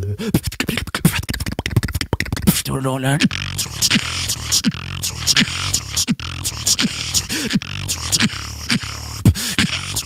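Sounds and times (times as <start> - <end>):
beatboxing: 0.0 - 10.0.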